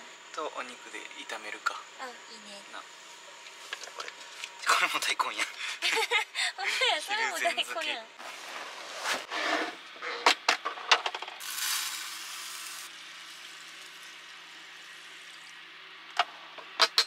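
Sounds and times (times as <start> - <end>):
rice grains pouring into pot: 11.4 - 15.6.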